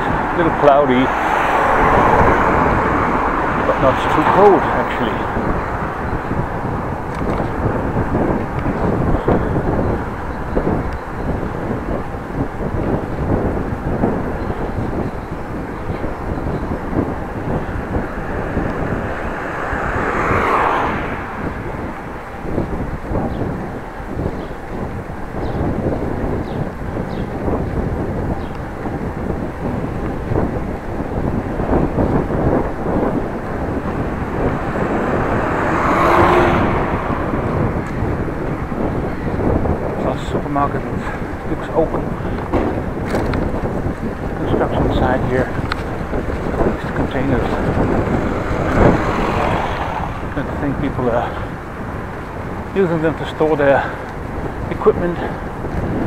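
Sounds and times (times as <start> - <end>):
tyre and road noise: 0.0 - 56.0
wind on microphone: 0.0 - 56.0.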